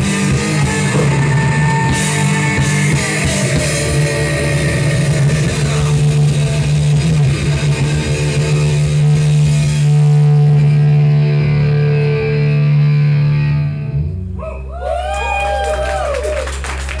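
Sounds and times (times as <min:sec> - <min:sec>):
heavy metal band sustained chord: 0:00.0 - 0:14.3.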